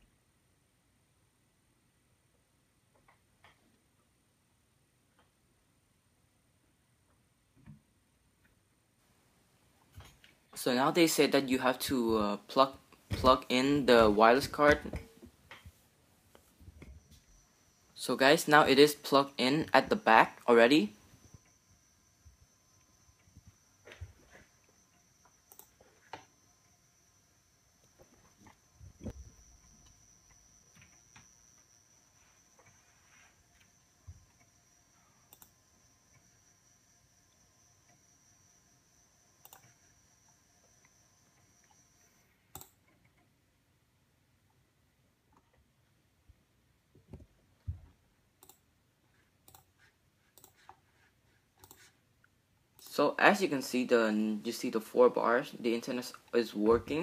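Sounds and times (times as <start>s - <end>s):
faint high whine: 3.7s - 45.1s, 46.0s - 57.0s
computer mouse clicks: 24.9s - 26.3s, 35.3s - 35.5s, 39.4s - 39.8s, 42.5s - 43.3s, 48.4s - 48.7s, 49.4s - 50.8s, 51.5s - 52.0s.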